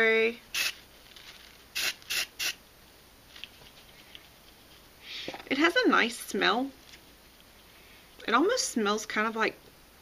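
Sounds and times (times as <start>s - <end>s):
aerosol spray can hissing: 0.5s - 0.8s, 1.8s - 2.6s.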